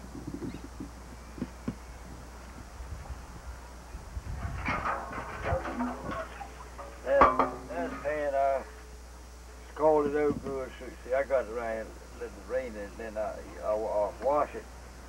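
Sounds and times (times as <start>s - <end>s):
frying pan scraping against pot: 4.4s - 8.2s.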